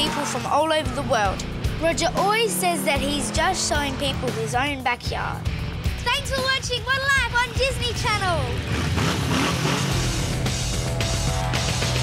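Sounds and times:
motor trike engine revving: 0.0 - 4.8, 7.3 - 12.0.

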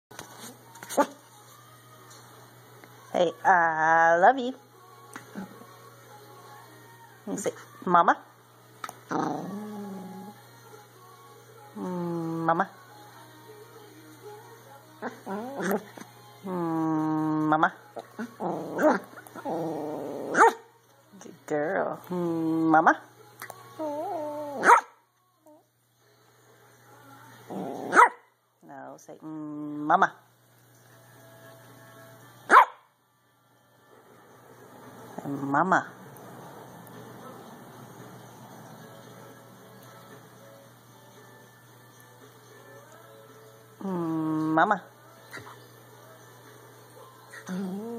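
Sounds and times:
faint low hum: 0.2 - 47.9
dog yipping: 20.3 - 20.6, 23.8 - 25.0, 27.9 - 28.2, 32.5 - 32.8.

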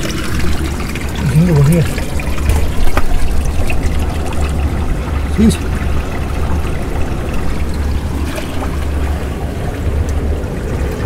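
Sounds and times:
water sloshing among rocks: 0.0 - 11.0.

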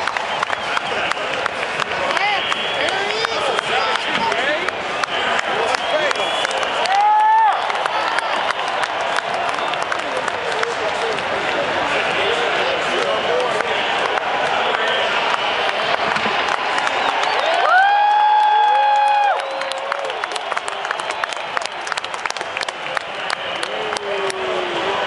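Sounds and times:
sharp nearby claps: 0.0 - 11.6
crowd cheering and clapping: 0.0 - 25.0.

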